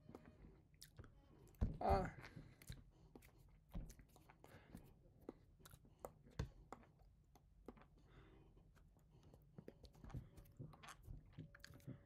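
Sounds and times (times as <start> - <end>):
mouth clicks and lip smacks: 5.2 - 8.1.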